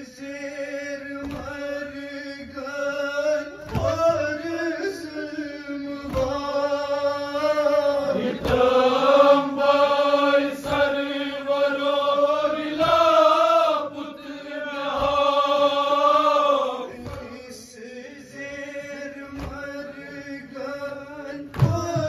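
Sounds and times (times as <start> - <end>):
lead voice on a microphone: 0.0 - 22.0
men chanting in unison: 0.0 - 22.0.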